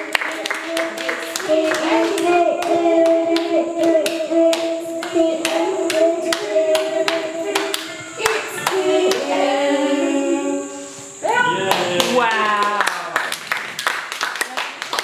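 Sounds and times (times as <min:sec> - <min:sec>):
hands clapping steady beat: 0:00.0 - 0:09.5, 0:11.6 - 0:15.0
child singing into microphone: 0:00.0 - 0:11.1.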